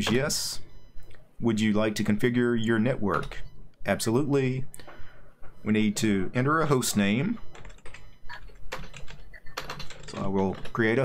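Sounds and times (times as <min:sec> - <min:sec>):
computer keyboard typing: 0:06.6 - 0:11.0.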